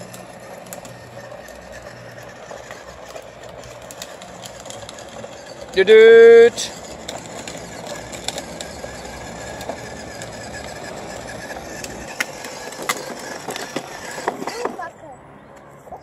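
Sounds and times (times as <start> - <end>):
grit crunching under wheels: 0.0 - 16.0
plastic wheels rolling on concrete: 0.0 - 16.0.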